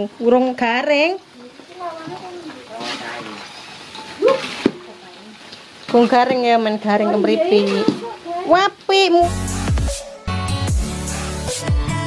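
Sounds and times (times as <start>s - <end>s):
voices: 0.0s - 9.3s
insects sizzling in oil: 0.0s - 9.7s.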